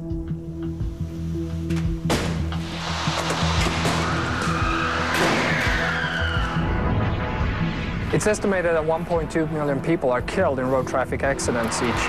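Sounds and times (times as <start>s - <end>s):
background music low notes: 0.0s - 12.0s
loud noisy screech: 2.6s - 8.5s.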